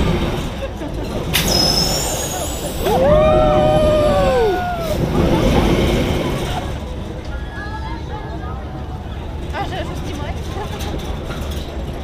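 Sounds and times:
air hiss with high whistle: 1.4 - 2.9
person screaming: 3.0 - 5.0.

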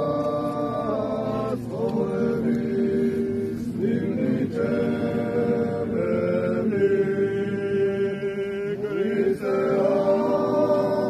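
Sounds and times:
voices chanting long notes: 0.0 - 11.0.

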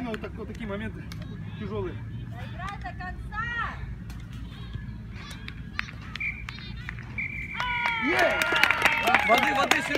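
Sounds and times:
low outdoor rumble: 0.0 - 9.9
distant shouting: 1.0 - 9.9
referee's whistle blasts: 7.1 - 7.7.

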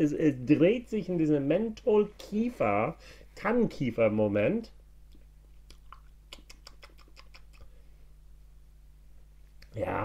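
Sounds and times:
wet mouth clicks: 5.1 - 7.7.

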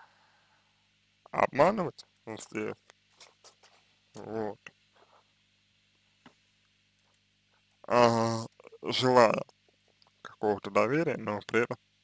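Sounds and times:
man saying a short word: 7.9 - 9.2.

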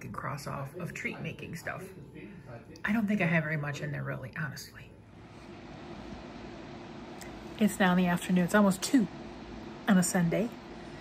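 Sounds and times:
faint background rushing noise: 0.0 - 11.0
low hum: 4.9 - 11.0.

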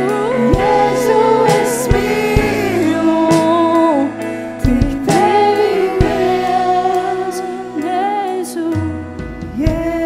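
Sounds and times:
women singing long held notes: 0.0 - 8.8
acoustic guitar: 0.0 - 10.0
keyboard: 0.0 - 10.0
drum hits: 0.5 - 3.8.

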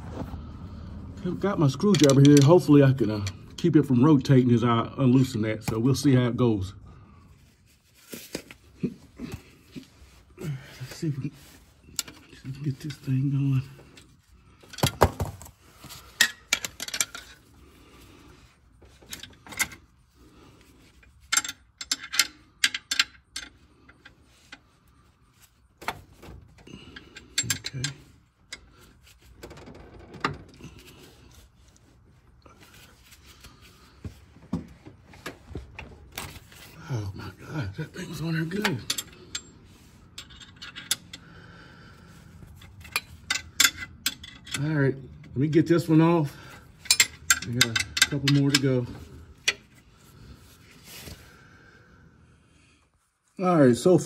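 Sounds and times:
wrench clicking on metal: 21.3 - 23.6.

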